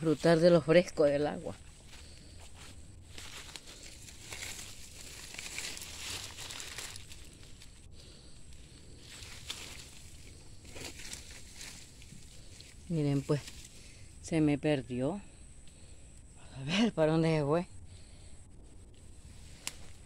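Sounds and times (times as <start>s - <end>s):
rustling of wet leaves: 0.0s - 14.1s, 19.1s - 20.0s
steady outdoor hiss: 0.0s - 20.0s
footsteps on leaf litter: 1.7s - 7.7s, 9.0s - 13.8s.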